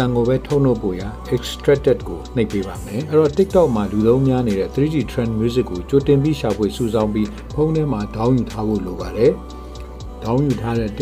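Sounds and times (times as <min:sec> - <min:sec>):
person talking: 0:00.0 - 0:09.5, 0:10.2 - 0:11.0
background music with ticking beat: 0:00.0 - 0:11.0.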